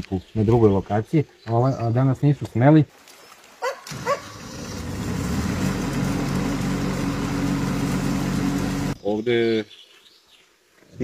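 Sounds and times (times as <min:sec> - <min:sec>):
water pump engine running: 0:03.9 - 0:09.0.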